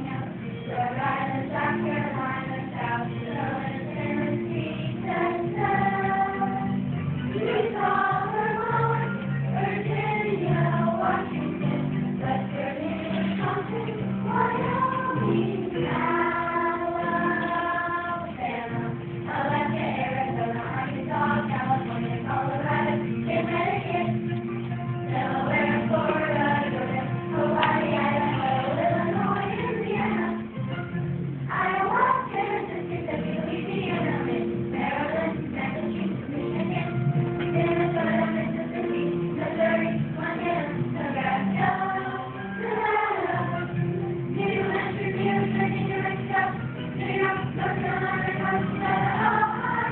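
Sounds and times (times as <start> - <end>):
children's choir singing: 0.0 - 24.4, 25.0 - 30.8, 31.5 - 49.9.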